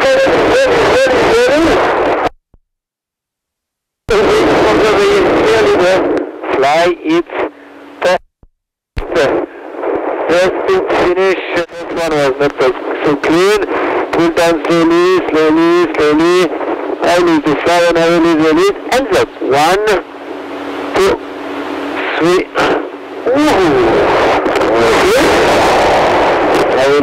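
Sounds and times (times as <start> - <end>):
man's voice over radio: 0.0 - 2.0, 4.1 - 8.2, 9.0 - 20.2, 20.9 - 21.3, 21.9 - 27.0
radio link low hum: 0.0 - 2.4, 4.0 - 27.0.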